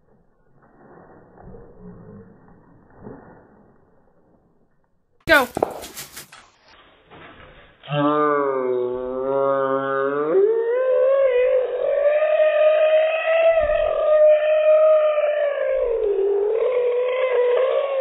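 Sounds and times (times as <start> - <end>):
child singing long wavering note: 7.9 - 18.0
low-pitched drone: 9.3 - 18.0.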